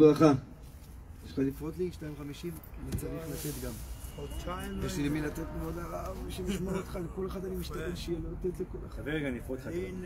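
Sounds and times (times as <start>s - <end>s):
men talking: 1.2s - 10.0s.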